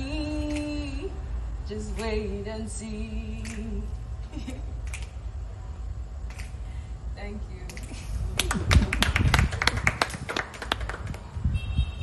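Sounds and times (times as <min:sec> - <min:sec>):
small audience clapping: 0:08.3 - 0:11.4.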